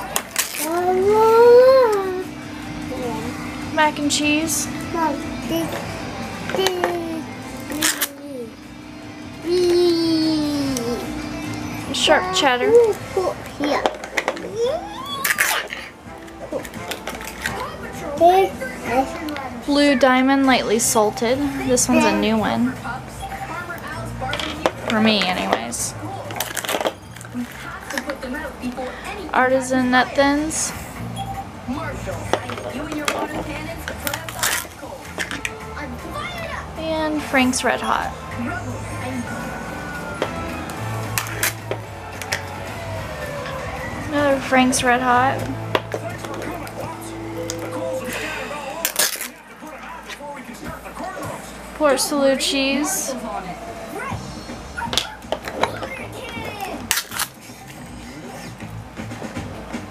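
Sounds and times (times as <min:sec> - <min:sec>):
background music: 0:00.0 - 0:59.9.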